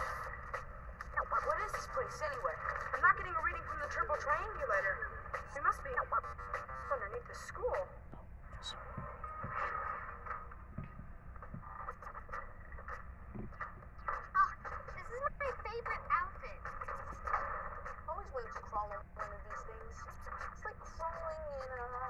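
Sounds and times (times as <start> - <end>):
muffled television voices: 0.0 - 22.0.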